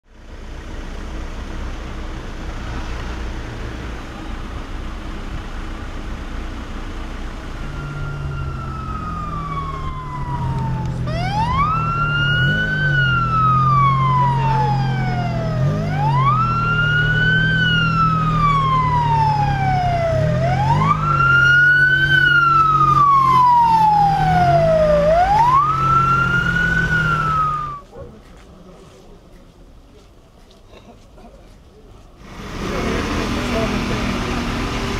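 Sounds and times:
vehicle engines humming: 0.1 - 34.9
ambulance siren wailing: 7.5 - 27.8.

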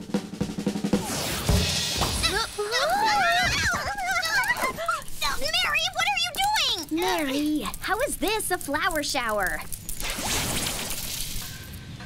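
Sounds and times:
loud drum hit with cymbal wash: 0.0 - 2.4
snare drum roll: 0.0 - 2.5.

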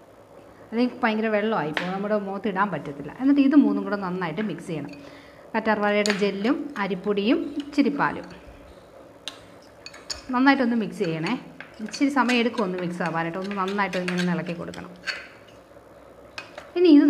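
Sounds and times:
person speaking: 0.8 - 5.0, 5.6 - 8.4, 10.2 - 15.0
metal spoon scraping ceramic bowl: 9.3 - 15.6.

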